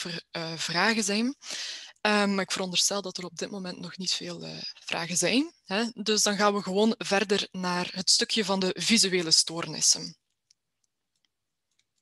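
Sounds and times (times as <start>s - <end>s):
computer mouse clicks: 10.2s - 12.0s.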